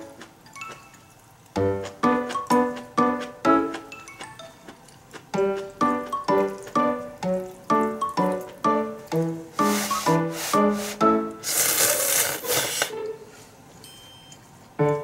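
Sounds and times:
piano background music: 0.0 - 11.8, 14.7 - 15.0
noodles being slurped: 9.6 - 13.0.

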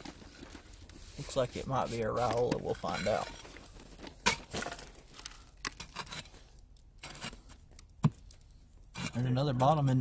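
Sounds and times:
digging tool scraping dirt: 0.0 - 4.9, 5.7 - 8.2, 8.9 - 9.9
soil crumbling: 0.0 - 10.0.

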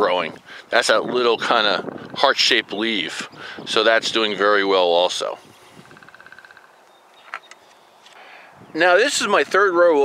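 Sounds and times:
distant animal trill: 5.6 - 6.8.

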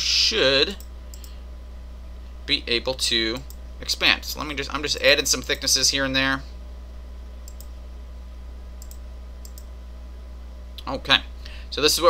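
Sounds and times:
low electrical hum: 0.0 - 12.0
computer mouse clicks: 0.8 - 1.4, 7.4 - 7.7, 8.8 - 9.7.

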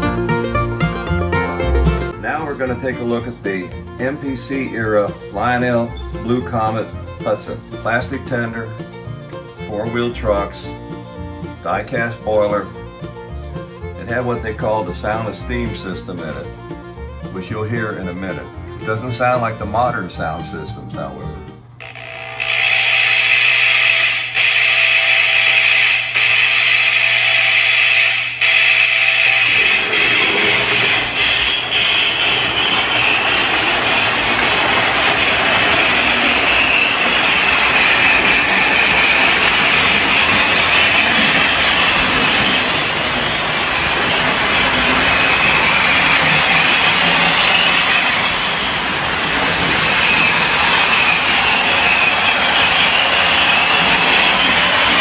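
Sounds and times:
model train hissing rush: 22.6 - 55.0.

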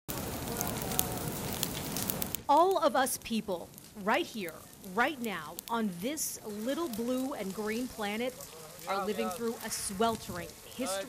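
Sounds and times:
fire crackling and popping: 0.1 - 11.0.

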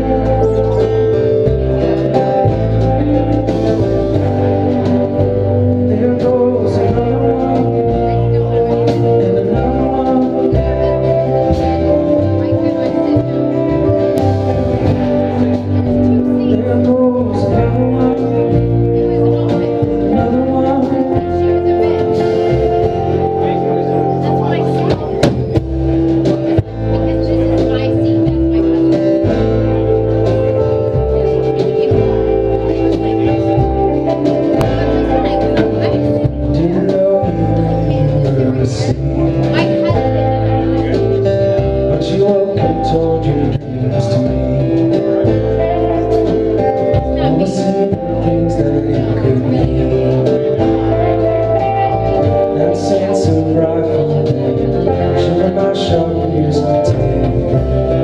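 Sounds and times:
folk-rock band playing: 0.0 - 58.0
person singing: 0.0 - 58.0.

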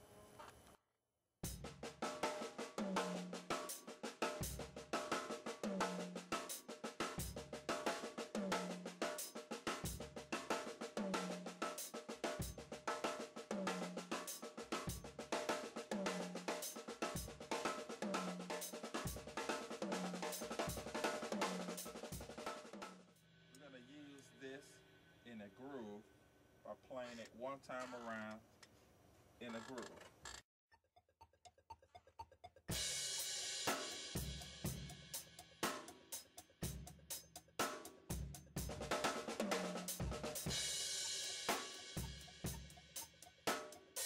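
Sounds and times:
drum kit groove: 1.4 - 24.6, 32.7 - 44.0.

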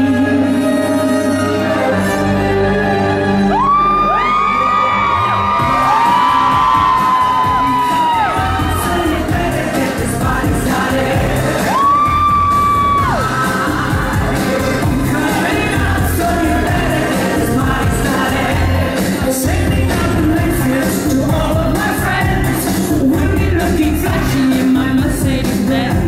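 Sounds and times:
loud pop music over pa: 0.0 - 26.0
audience screaming and whooping: 3.3 - 19.1.

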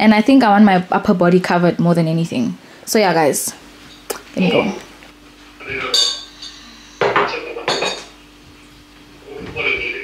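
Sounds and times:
tableware clinking: 5.8 - 8.2.

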